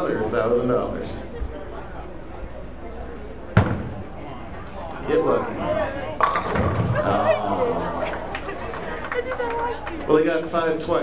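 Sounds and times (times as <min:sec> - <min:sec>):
murmur of bowling alley: 0:00.0 - 0:11.0
bowling ball thud on lane: 0:03.6 - 0:04.0, 0:06.2 - 0:07.0.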